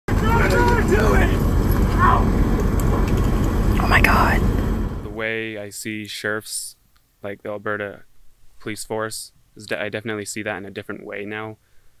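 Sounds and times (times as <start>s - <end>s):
car road and engine rumble: 0.1s - 5.2s
person speaking: 3.7s - 6.0s.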